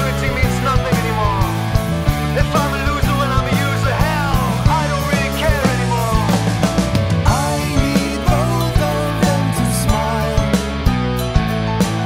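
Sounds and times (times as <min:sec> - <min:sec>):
rock instrumental: 0:00.0 - 0:12.0
sliding lead guitar line: 0:00.0 - 0:12.0
steady drum beat: 0:00.0 - 0:12.0
sustained bass notes: 0:00.0 - 0:12.0.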